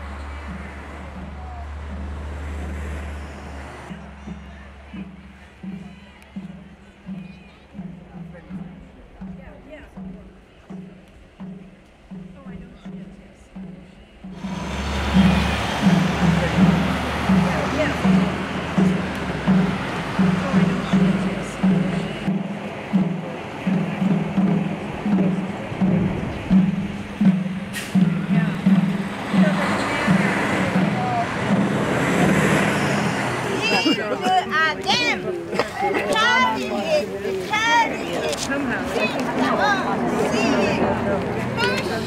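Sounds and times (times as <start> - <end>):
car passing: 0.0 - 5.8, 13.4 - 42.0
low drum beating: 0.0 - 42.0
murmur of marching crowd: 0.0 - 42.0
woman speaking: 12.3 - 13.6, 20.3 - 22.2.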